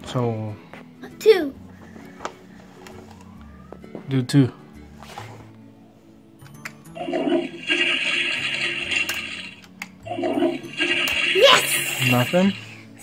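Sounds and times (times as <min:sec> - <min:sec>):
toy toilet flushing sound: 0:07.0 - 0:12.9.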